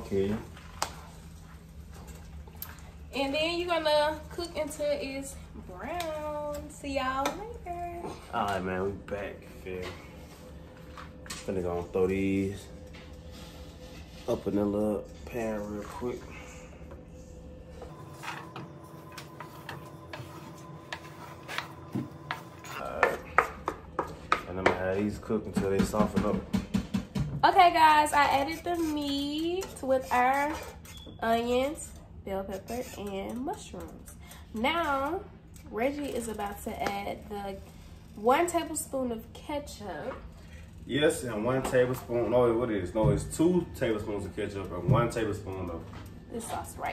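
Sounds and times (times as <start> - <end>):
low hum: 0.0 - 26.8.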